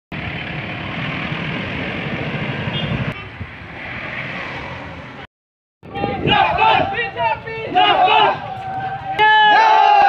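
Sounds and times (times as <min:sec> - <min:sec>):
cars driving past: 0:00.2 - 0:05.3.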